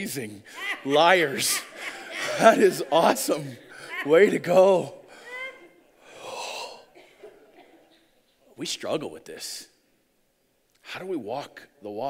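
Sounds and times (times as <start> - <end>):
breath near microphone: 6.0 - 7.3.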